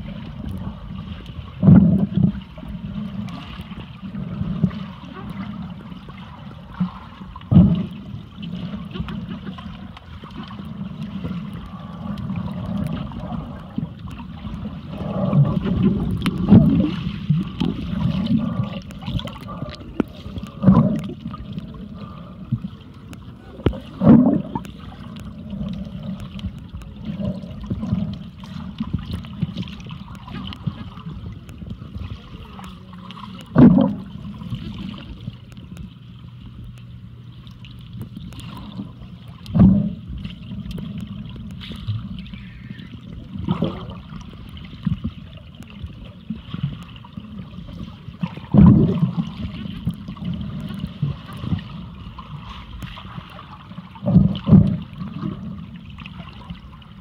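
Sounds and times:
underwater rush of water: 0.0 - 57.0
water surges: 0.0 - 57.0.

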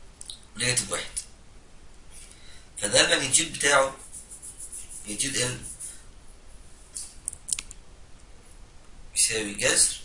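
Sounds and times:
stylus scratching on pen tablet: 3.7 - 6.0.

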